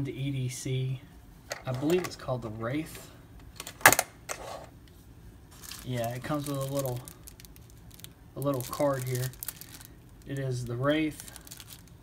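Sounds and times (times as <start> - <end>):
plastic case clicking shut: 3.6 - 4.1.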